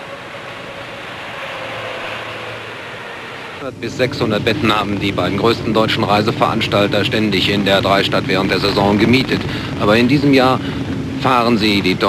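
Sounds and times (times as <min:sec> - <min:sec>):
faint hum: 0:00.0 - 0:12.0
street noise: 0:00.0 - 0:12.0.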